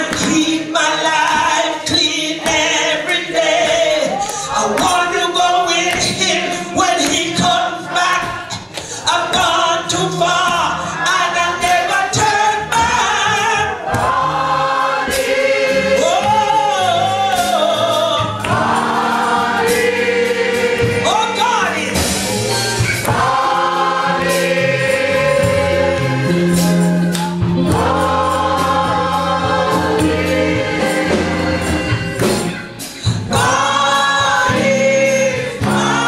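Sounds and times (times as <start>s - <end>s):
woman singing gospel song: 0.0s - 13.8s, 15.2s - 19.8s, 20.8s - 21.9s, 33.2s - 36.0s
congregation singing along: 0.0s - 36.0s
instrumental accompaniment: 0.0s - 36.0s.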